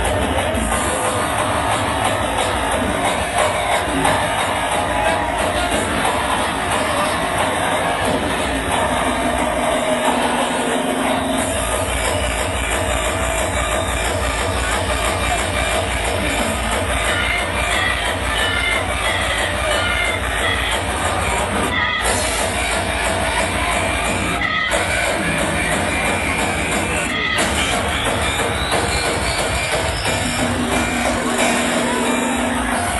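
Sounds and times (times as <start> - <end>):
hard electronic dance music: 0.0 - 32.9.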